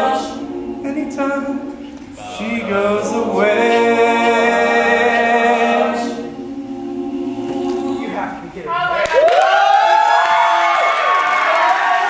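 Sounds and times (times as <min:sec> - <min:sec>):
a cappella choir singing: 0:00.0 - 0:08.6.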